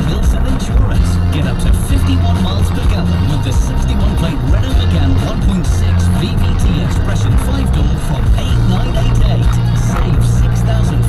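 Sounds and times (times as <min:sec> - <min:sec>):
car road noise: 0:00.0 - 0:11.0
music on car radio: 0:00.0 - 0:11.0.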